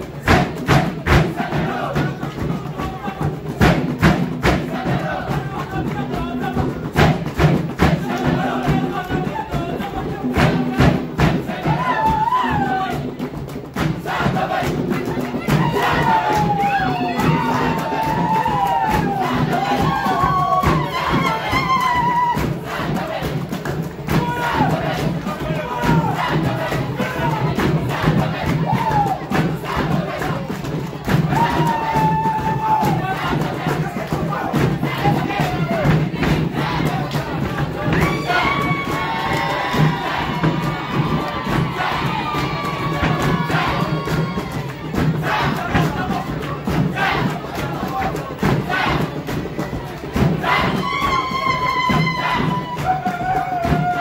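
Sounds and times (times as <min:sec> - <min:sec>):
crowd cheering and shouting: 0:00.0 - 0:54.0
steady percussive beat: 0:00.0 - 0:54.0
voices singing and calling: 0:00.0 - 0:54.0.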